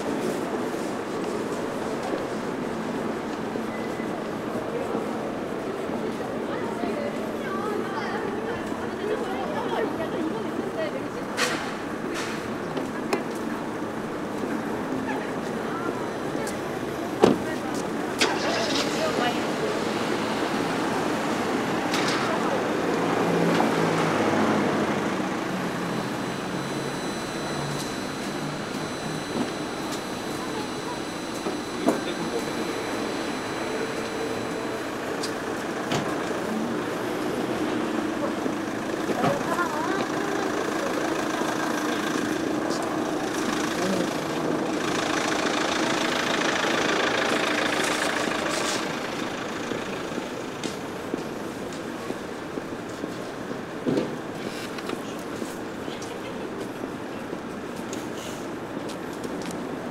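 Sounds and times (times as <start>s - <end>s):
passers-by talking: 0.0s - 59.9s
car engine running: 23.6s - 51.5s.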